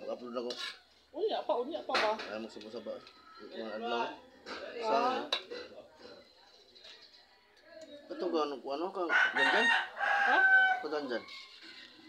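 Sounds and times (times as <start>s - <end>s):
metal ladle scraping a pot: 0.1s - 1.1s, 11.0s - 12.0s.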